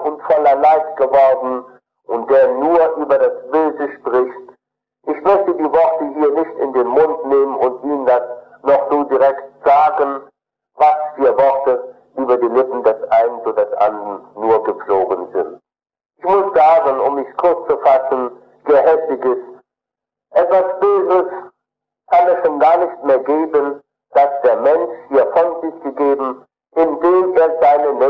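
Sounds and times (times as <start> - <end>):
man lecturing: 0.0 - 4.5, 5.1 - 15.6, 16.2 - 19.6, 20.3 - 21.5, 22.1 - 28.0.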